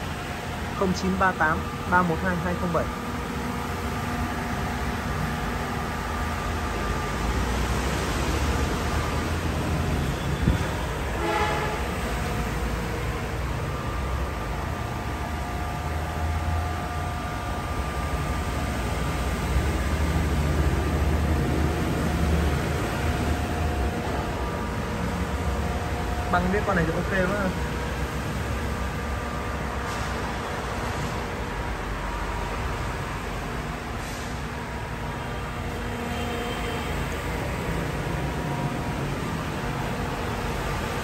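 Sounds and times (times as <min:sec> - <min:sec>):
faint constant whine: 0:00.0 - 0:41.0.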